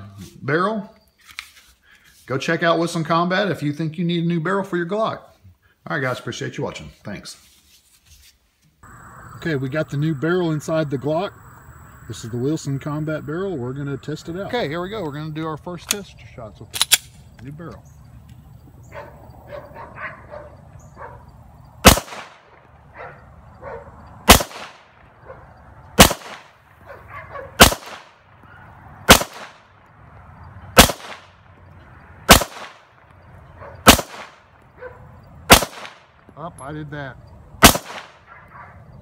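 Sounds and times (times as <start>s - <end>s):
pistol shots with echo: 21.8s - 22.8s, 24.2s - 25.2s, 26.0s - 26.7s, 27.6s - 28.4s, 29.1s - 29.9s, 30.7s - 31.5s, 32.3s - 34.7s, 35.5s - 36.3s, 37.6s - 38.4s.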